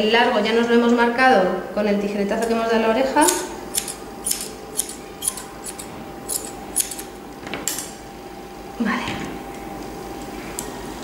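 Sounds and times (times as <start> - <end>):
scissors snipping dog fur: 3.2 - 7.1.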